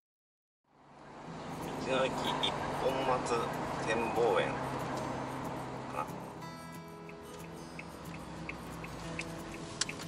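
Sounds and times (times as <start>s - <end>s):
van engine and road noise: 0.6s - 10.0s.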